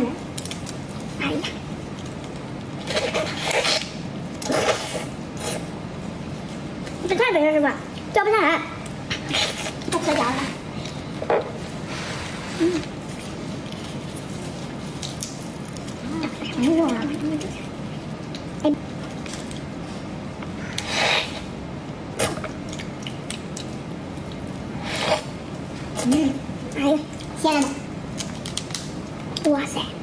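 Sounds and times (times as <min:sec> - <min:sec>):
steady background hiss: 0:00.0 - 0:30.0
shrimp shell cracking: 0:28.1 - 0:29.3.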